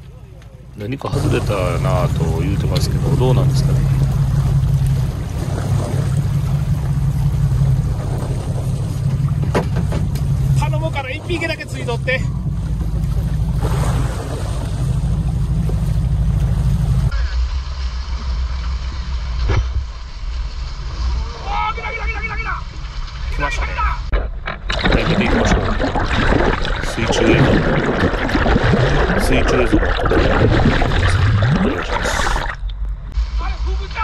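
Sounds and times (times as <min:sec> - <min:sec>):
boat motor humming: 0:00.0 - 0:34.0
sea noise: 0:00.0 - 0:34.0
wind: 0:00.0 - 0:34.0.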